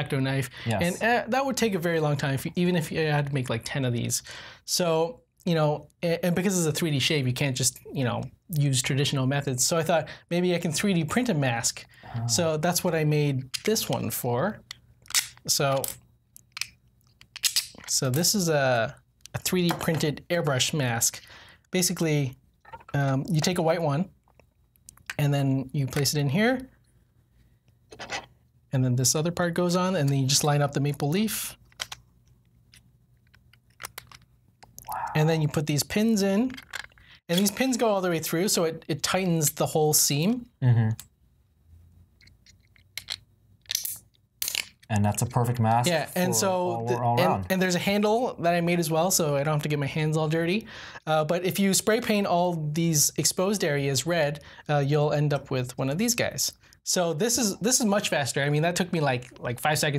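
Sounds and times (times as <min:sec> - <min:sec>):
plastic pieces clacking: 0:14.7 - 0:17.9, 0:31.7 - 0:32.0, 0:32.7 - 0:34.8, 0:36.5 - 0:37.5, 0:42.2 - 0:44.9
small plastic clicks: 0:31.7 - 0:34.8.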